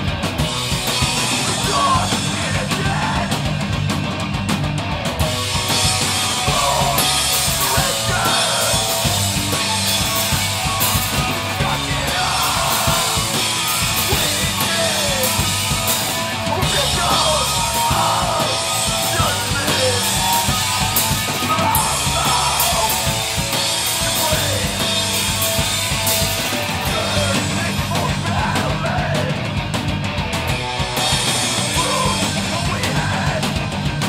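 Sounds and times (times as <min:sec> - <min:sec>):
pounding drum kit: 0:00.0 - 0:34.0
punk band playing: 0:00.0 - 0:34.0
shouted vocals: 0:01.2 - 0:03.6, 0:05.8 - 0:25.7, 0:26.7 - 0:29.5, 0:31.4 - 0:33.7.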